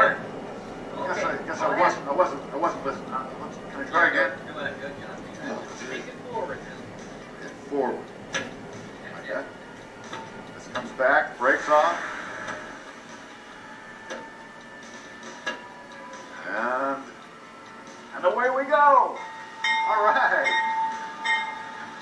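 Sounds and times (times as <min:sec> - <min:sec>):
voices speaking: 0:00.0 - 0:12.6.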